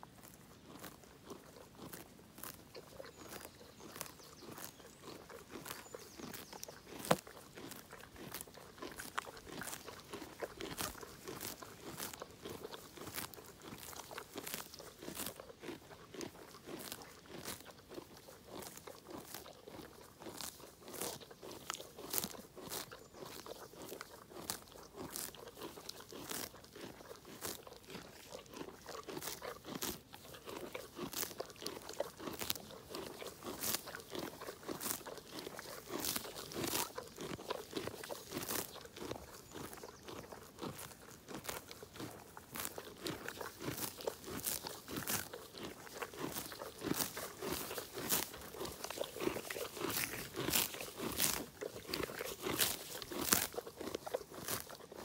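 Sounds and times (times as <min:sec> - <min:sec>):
pony tearing and chewing grass: 0:00.0 - 0:55.0.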